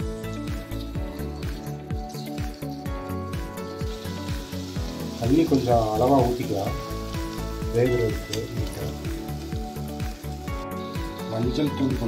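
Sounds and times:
pan sizzling: 0.0 - 12.0
water pouring into hot pan: 0.4 - 12.0.

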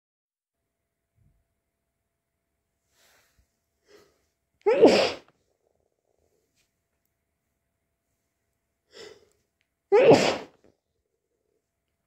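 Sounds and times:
person sneezing: 4.7 - 5.3, 9.9 - 10.6.

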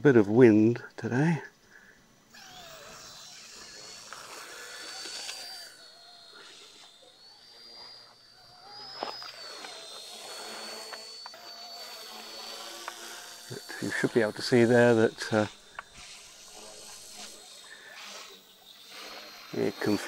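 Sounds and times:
small helicopter motors whining: 1.1 - 20.0.

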